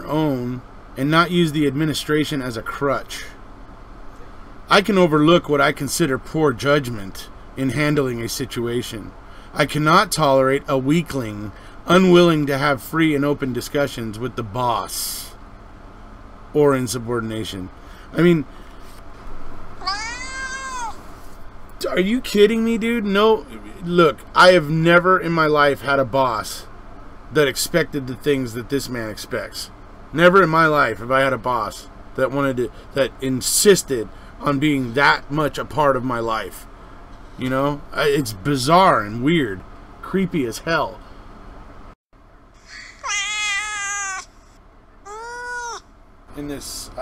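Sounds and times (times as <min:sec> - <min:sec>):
house cat meowing: 0:19.8 - 0:21.0, 0:42.7 - 0:44.3, 0:45.1 - 0:45.8.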